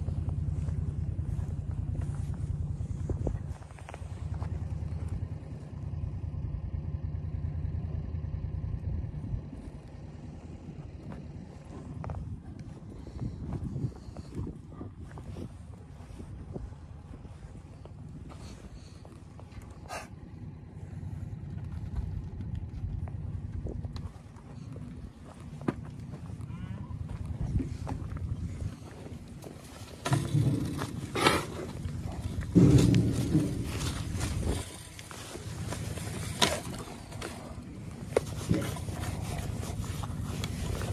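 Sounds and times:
vehicle engine running: 0.0 - 40.9.

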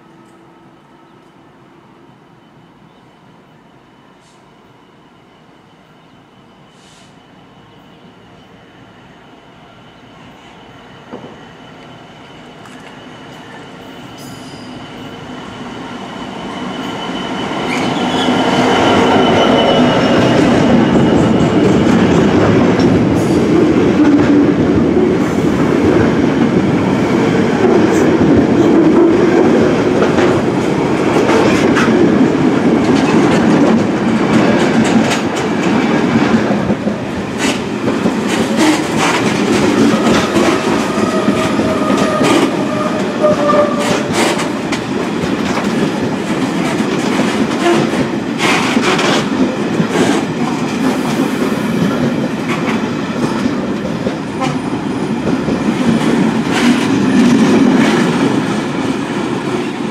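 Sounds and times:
diesel locomotive engine passing: 8.5 - 59.9
train wheels clickety-clack: 10.2 - 15.3, 16.1 - 59.9.

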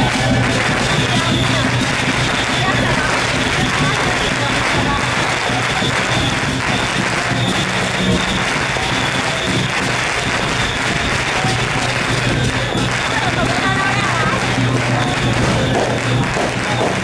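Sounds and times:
dense crackling: 0.0 - 17.0
procession music: 0.0 - 17.0.

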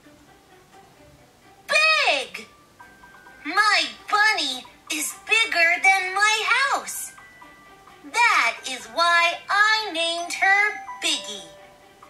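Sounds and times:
child reading aloud sing-song: 1.7 - 2.5, 3.4 - 7.2, 8.0 - 11.6.

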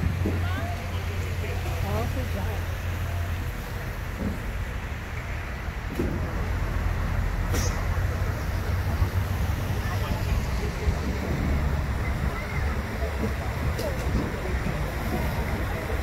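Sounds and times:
faint voices: 0.0 - 16.0
steady low rumble: 0.0 - 16.0.

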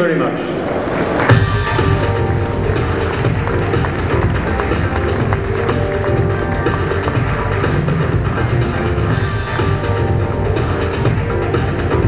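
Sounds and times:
music with heavy bass beat: 1.3 - 12.0.

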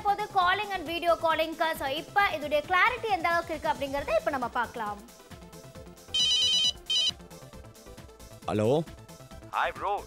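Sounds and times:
soft background music: 0.0 - 10.0
warbling phone ringtone: 6.2 - 7.2.

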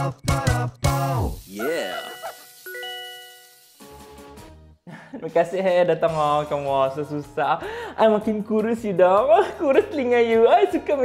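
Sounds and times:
singing voice sliding down: 1.1 - 2.4
ding-dong doorbell chime: 2.7 - 3.7.

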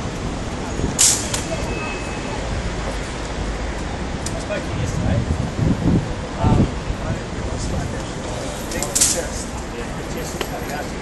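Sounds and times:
city street traffic: 0.0 - 11.0.

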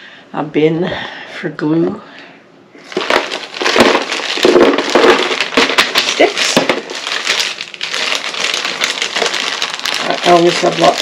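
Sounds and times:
plastic packaging crinkling: 2.8 - 11.0.

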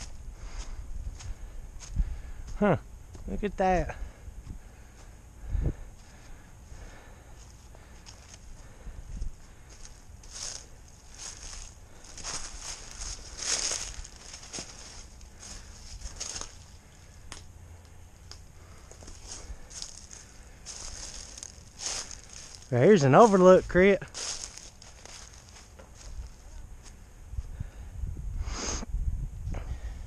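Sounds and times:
footsteps crunching dry leaves: 0.0 - 3.3, 6.0 - 17.2, 18.6 - 27.0.

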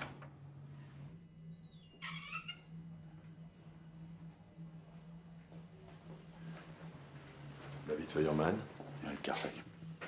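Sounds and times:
steady low hum: 0.0 - 10.0
high-pitched squeak: 1.5 - 2.8.

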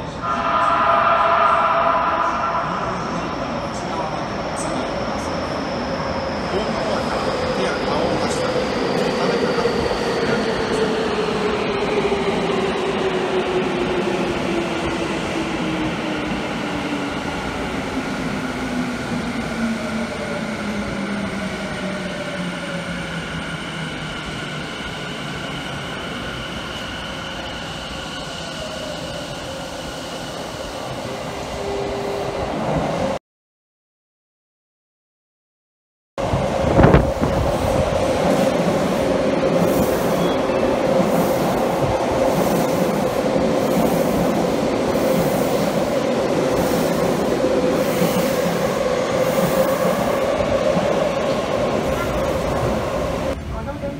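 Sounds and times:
another train arriving: 0.0 - 33.2, 36.2 - 53.9
train wheels on rail: 36.2 - 53.4
subway train motor whine: 36.2 - 53.8.

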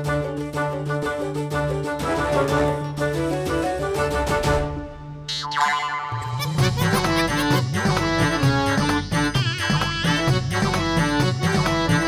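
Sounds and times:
playful bouncy music: 0.0 - 12.0.

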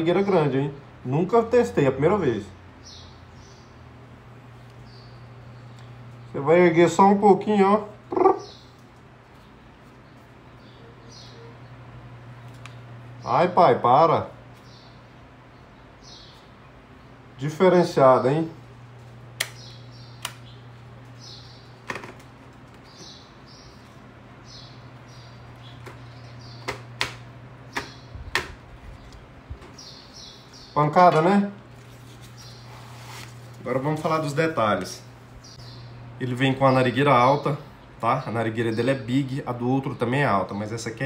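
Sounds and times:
low room hum: 0.0 - 41.0
faint bird chirps: 9.4 - 13.3.

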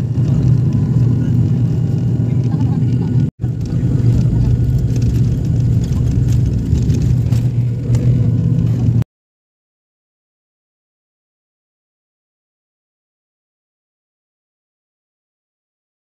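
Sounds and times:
turboprop engines droning: 0.0 - 9.0.

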